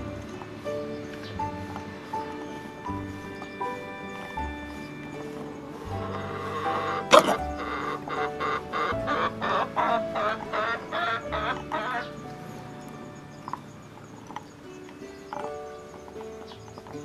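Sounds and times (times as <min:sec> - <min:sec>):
background music: 0:00.0 - 0:17.0
rooster clucking: 0:06.0 - 0:12.2.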